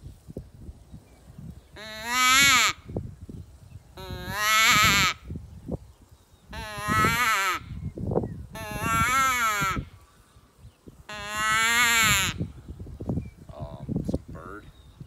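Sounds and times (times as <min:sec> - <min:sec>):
predator call distress wails: 0:01.8 - 0:02.8, 0:04.0 - 0:05.2, 0:06.6 - 0:07.8, 0:08.6 - 0:09.9, 0:11.1 - 0:12.4.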